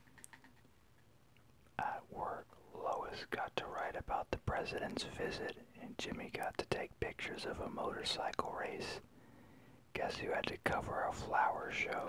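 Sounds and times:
person whispering: 1.8s - 9.1s, 9.9s - 12.0s.

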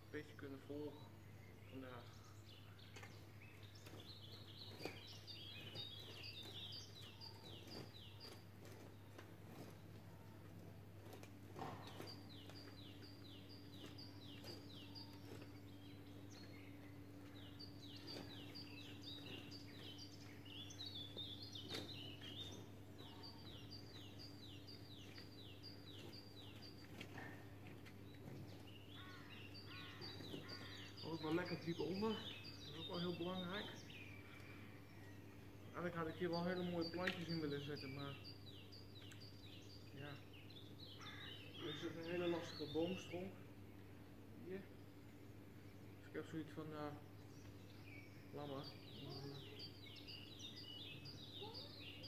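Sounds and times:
songbird singing: 0.0s - 52.0s
steady low hum: 0.0s - 52.0s.

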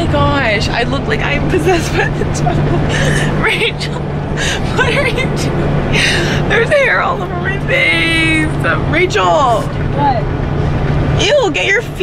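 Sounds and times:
bus engine drone: 0.0s - 12.0s
girls talking and laughing: 0.0s - 12.0s.

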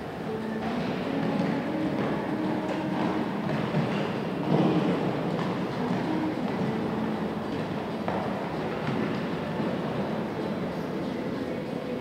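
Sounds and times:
indoor arena rumble: 0.0s - 12.0s.

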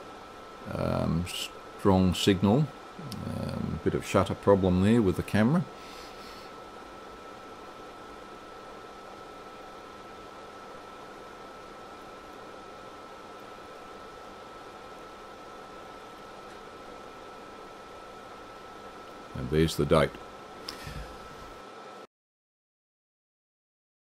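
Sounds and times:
steady background hiss: 0.0s - 22.1s.

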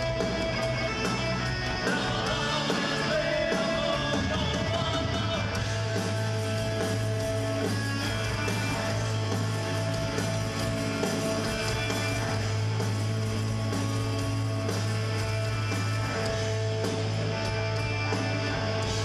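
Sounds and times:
bass guitar: 0.0s - 19.0s
drums: 0.0s - 19.0s
electric guitar: 0.0s - 19.0s.

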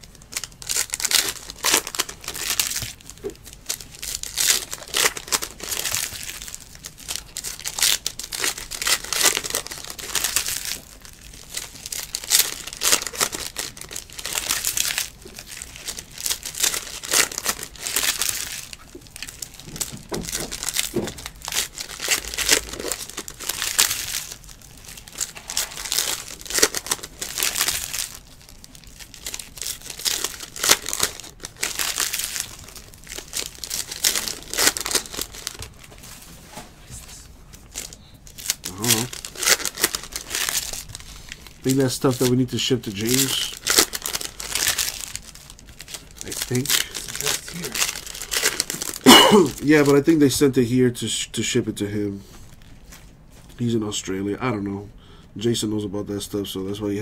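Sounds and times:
foil wrappers crinkling and tearing: 0.0s - 36.2s, 37.5s - 51.2s, 52.4s - 53.7s.

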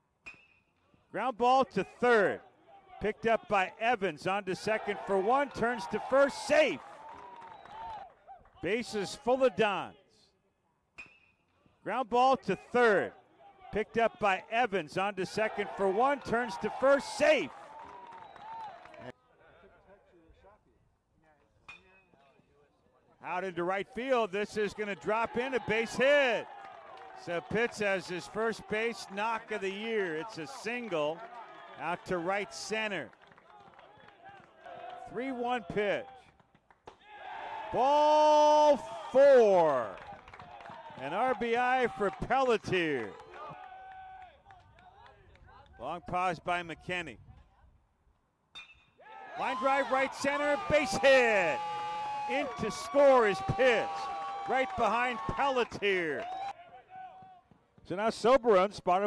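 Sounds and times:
metal bat hitting ball: 48.5s - 48.9s.

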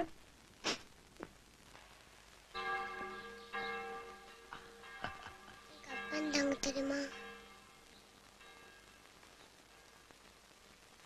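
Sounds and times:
bell ringing: 2.6s - 7.8s.

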